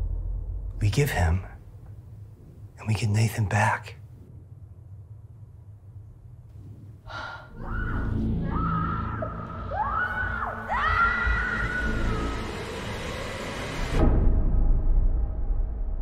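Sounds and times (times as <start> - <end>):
low rumble: 0.0 - 2.9, 4.0 - 16.0.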